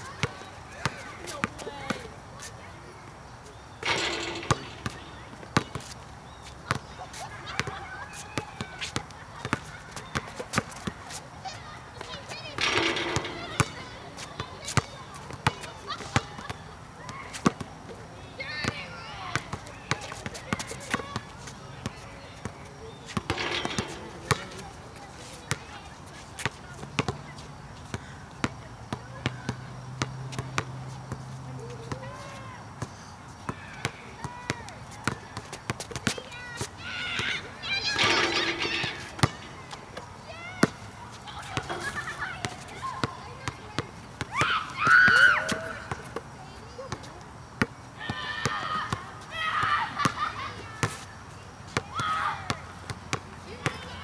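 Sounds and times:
basketball bouncing on hard court: 3.8s - 6.0s, 6.6s - 6.9s, 12.0s - 17.6s, 23.1s - 25.7s, 37.2s - 39.8s.

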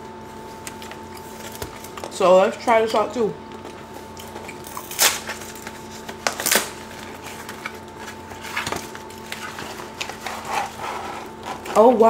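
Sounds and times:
cardboard tearing: 4.7s - 11.9s
cardboard rustling: 5.0s - 11.9s.

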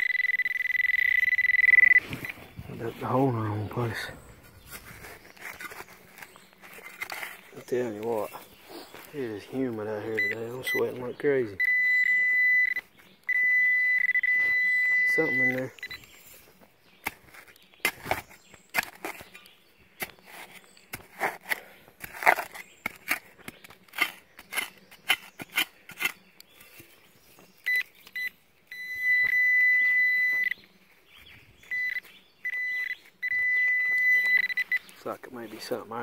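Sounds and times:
metal detector alert tone: 0.0s - 3.5s, 10.1s - 16.1s, 27.6s - 30.6s, 31.6s - 34.9s
dirt scraping and knocks: 1.8s - 11.6s, 14.3s - 28.2s, 33.0s - 36.0s.

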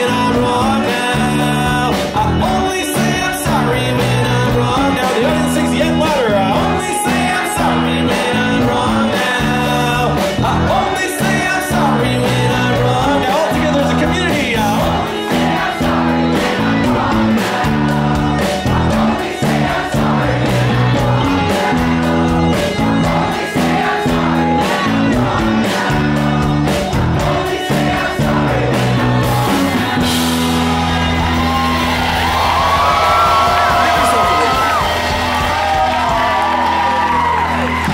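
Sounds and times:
audience singing along: 0.0s - 37.5s
live rock band playing: 0.0s - 37.9s
drum beat: 0.4s - 37.5s
voices whooping: 30.8s - 37.9s.

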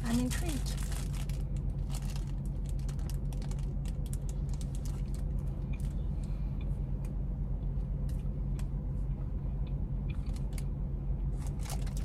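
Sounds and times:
plastic wrapper crackling: 0.0s - 5.9s, 11.4s - 12.0s.

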